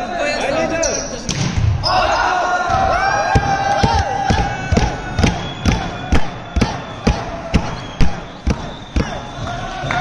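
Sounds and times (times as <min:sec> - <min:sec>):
crowd voices: 0:00.0 - 0:10.0
steady thumps: 0:02.7 - 0:09.6.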